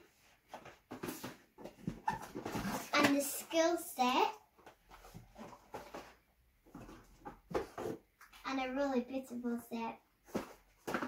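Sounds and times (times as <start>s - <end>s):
packaging rustling and scraping: 0.6s - 3.2s, 4.8s - 8.0s.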